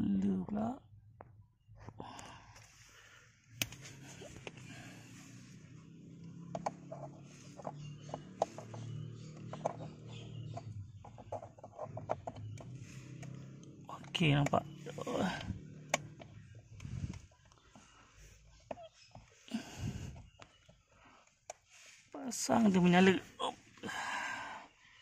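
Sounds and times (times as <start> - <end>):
small plastic clicks and knocks: 6.5 - 14.6, 15.8 - 19.4.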